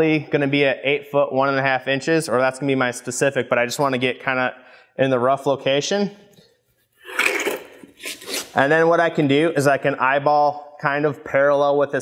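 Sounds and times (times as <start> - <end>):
block scraping on concrete floor: 7.0 - 8.6.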